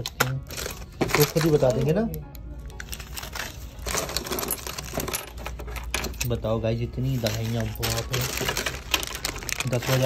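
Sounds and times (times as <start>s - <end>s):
plastic rustling: 0.1s - 10.0s.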